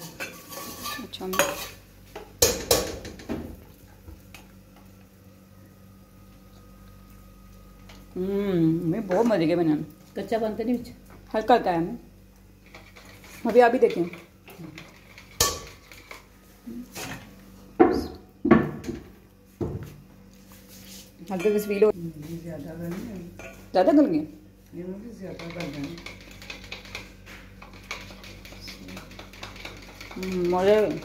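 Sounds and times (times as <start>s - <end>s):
serving spoon scraping steel pot: 0.0s - 1.8s
metal kitchenware clink: 15.3s - 15.8s.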